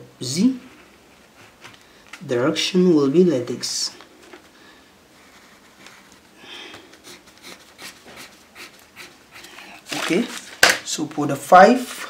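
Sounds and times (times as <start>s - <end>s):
pencil scratching on paper: 7.0s - 9.9s.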